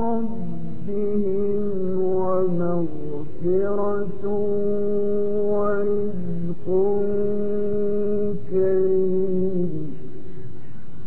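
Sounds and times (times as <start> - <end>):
man reciting melodically: 0.0 - 11.0.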